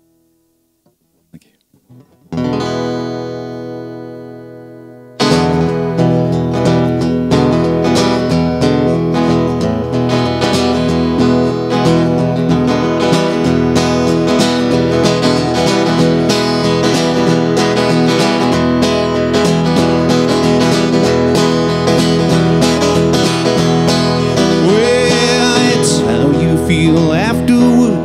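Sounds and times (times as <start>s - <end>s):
acoustic guitar strumming: 1.8s - 28.0s.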